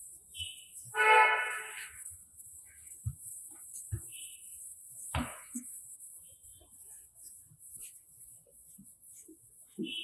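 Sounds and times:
steady horn-like tone: 0.9s - 2.0s.

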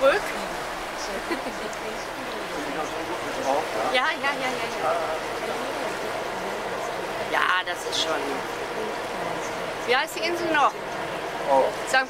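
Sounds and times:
faint voices: 0.0s - 12.0s
rushing noise aboard boat: 0.0s - 12.0s.

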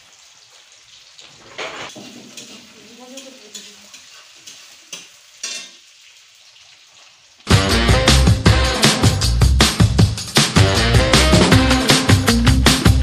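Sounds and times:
food sizzling in hot oil: 0.0s - 10.6s
metal spatula scraping pan: 1.6s - 5.8s.

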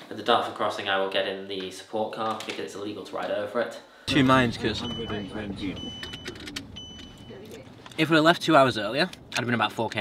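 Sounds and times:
high electronic beeps: 4.1s - 7.8s.

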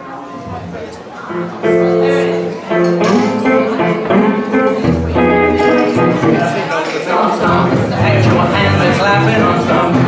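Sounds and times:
strummed acoustic guitars: 1.3s - 10.0s
double bass: 7.5s - 10.0s.

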